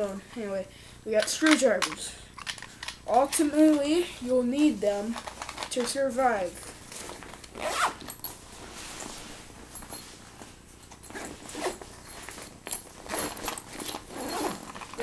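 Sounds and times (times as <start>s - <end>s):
backpack zipper opening: 7.5s - 8.1s, 11.1s - 11.8s, 13.0s - 15.0s.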